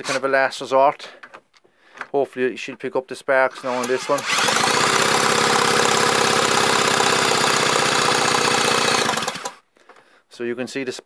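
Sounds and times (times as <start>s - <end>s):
electric drill spinning: 3.6s - 9.6s.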